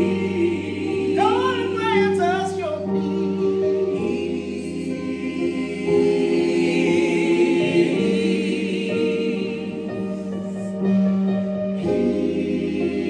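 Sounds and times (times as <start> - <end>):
choir singing in harmony: 0.0 - 13.0
keyboard accompanying: 0.0 - 13.0
voice singing with vibrato: 1.1 - 2.9.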